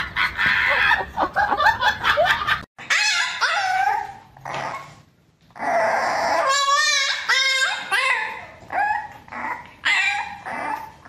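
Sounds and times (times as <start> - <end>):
puppy whining: 2.8 - 11.0.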